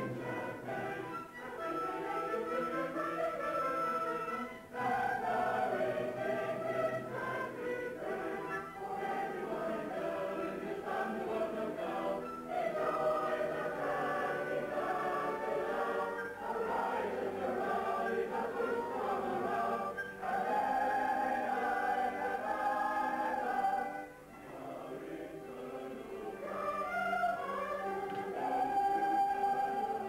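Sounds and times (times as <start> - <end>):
choir singing held notes: 0.0 - 30.0.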